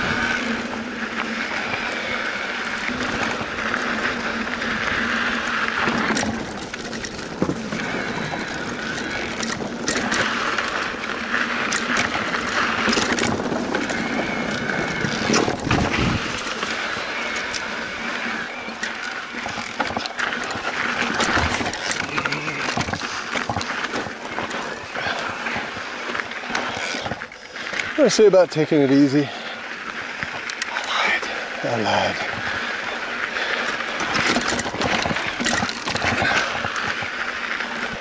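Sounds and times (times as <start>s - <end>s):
bike clattering over bumps: 0.0s - 38.0s
tyres rumbling over dirt: 0.0s - 38.0s.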